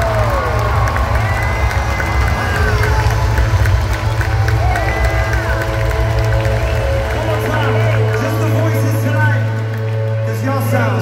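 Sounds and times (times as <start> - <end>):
live worship band music: 0.0 - 11.0.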